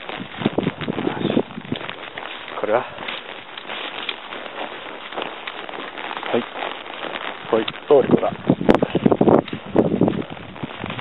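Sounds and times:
footsteps on dry leaves and twigs: 0:00.0 - 0:11.0.

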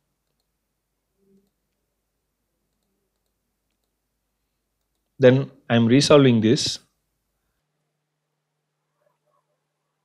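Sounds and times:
faint computer mouse clicks: 0:00.2 - 0:00.6, 0:02.7 - 0:04.0, 0:04.8 - 0:05.2.

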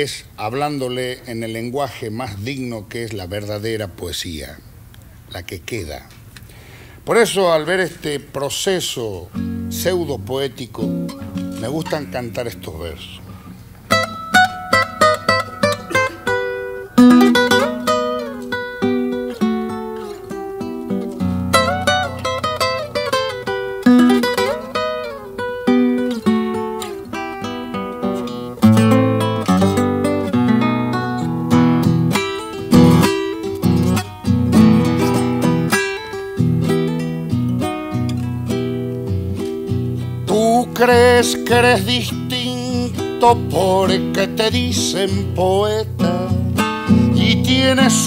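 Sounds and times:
acoustic guitar playing: 0:09.0 - 0:48.0.

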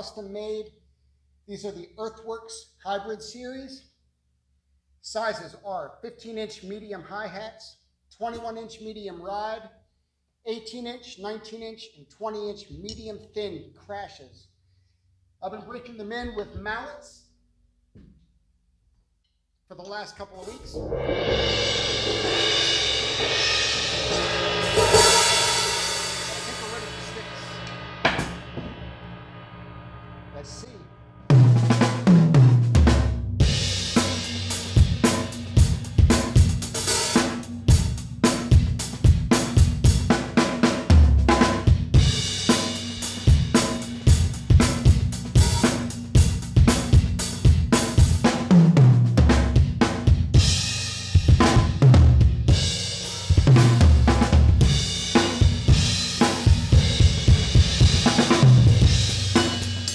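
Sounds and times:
drum kit groove with tom fills: 0:20.4 - 0:29.0, 0:31.3 - 0:59.9
cymbals ringing from mallet roll: 0:20.6 - 0:30.7.

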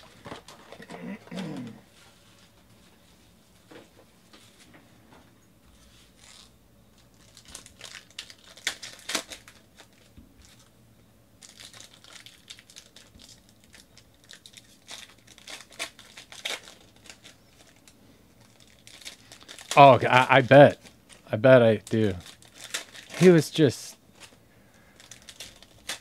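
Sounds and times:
foil wrappers crinkling and tearing: 0:00.0 - 0:01.8, 0:05.8 - 0:10.7, 0:11.4 - 0:26.0
cards being handled: 0:05.7 - 0:10.7, 0:14.6 - 0:24.4.

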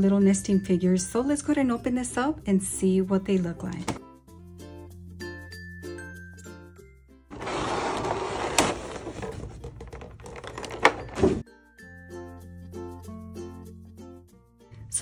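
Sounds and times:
light background music: 0:00.0 - 0:15.0
plastic packaging crinkling: 0:07.4 - 0:11.4.

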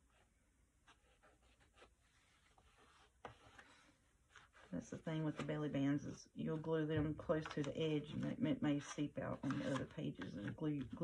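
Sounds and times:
paper rustling: 0:07.4 - 0:11.0.

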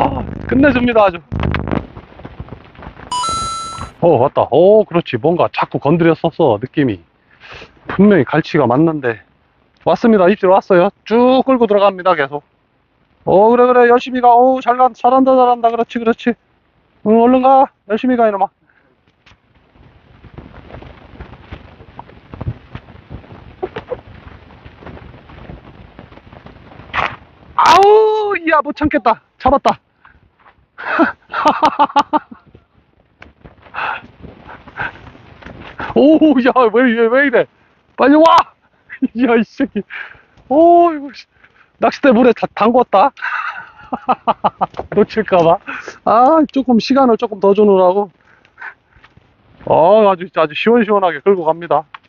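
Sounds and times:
low rough background noise: 0:03.9 - 0:52.0.

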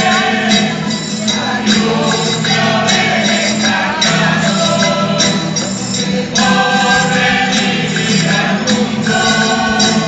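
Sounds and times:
jingling percussion: 0:00.0 - 0:10.0
mixed group singing: 0:00.0 - 0:10.0
strummed acoustic guitars: 0:00.0 - 0:10.0.

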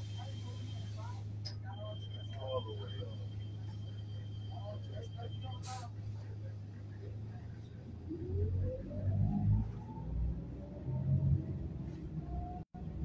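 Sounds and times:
bus drivetrain hum and whine: 0:00.0 - 0:13.0.

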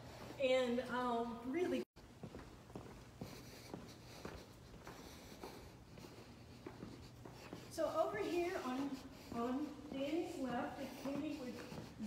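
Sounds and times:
steady low hum: 0:00.0 - 0:12.0
footsteps going down stairs: 0:02.0 - 0:12.0.

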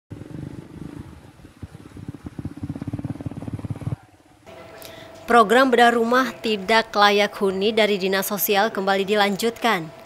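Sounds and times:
small engine running: 0:00.1 - 0:05.1.

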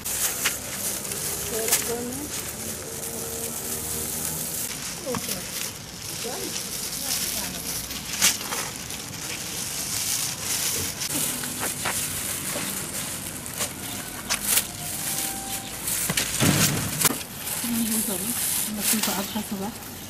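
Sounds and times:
loud rustle: 0:00.0 - 0:20.0
plastic sheets crinkling: 0:00.0 - 0:20.0.

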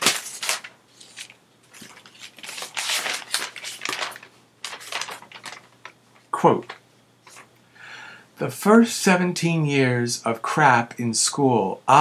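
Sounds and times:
paper pages rustling: 0:00.0 - 0:07.5.

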